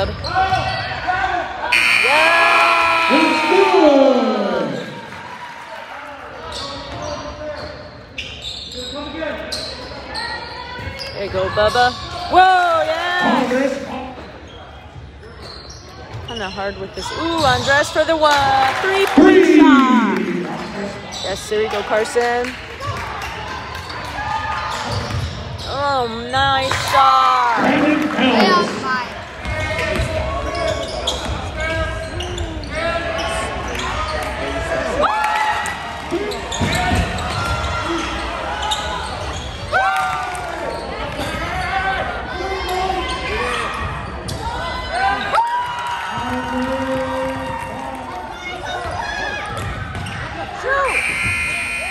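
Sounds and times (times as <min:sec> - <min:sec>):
crowd chatter: 0:09.8 - 0:23.9, 0:24.8 - 0:35.1
sneakers squeaking on court: 0:49.6 - 0:50.3.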